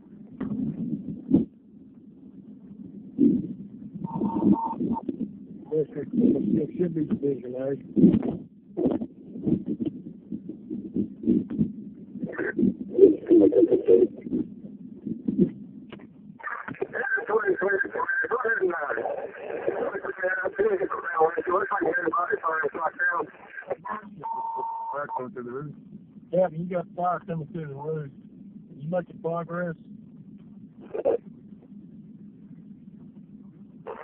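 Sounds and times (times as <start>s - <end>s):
muffled talk: 5.6s - 10.0s, 12.2s - 14.5s, 16.4s - 29.9s, 30.6s - 34.0s
voice over two-way radio: 16.4s - 25.7s.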